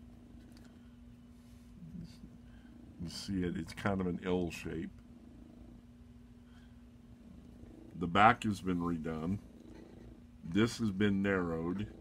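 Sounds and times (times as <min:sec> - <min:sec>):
cat purring: 0:01.8 - 0:12.0.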